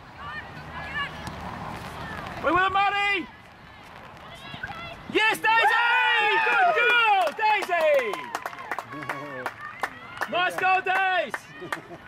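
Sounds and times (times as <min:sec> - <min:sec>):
spectators shouting and cheering: 0:00.2 - 0:12.0.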